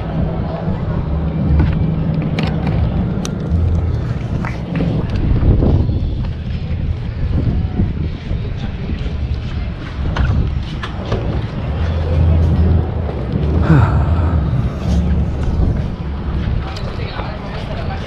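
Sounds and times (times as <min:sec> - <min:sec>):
faint voices: 0:00.0 - 0:18.0
wind buffeting microphone: 0:00.0 - 0:18.0.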